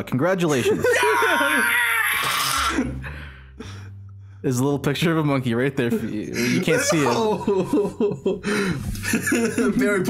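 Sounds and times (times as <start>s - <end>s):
men laughing: 0.5s - 2.1s, 5.9s - 10.0s.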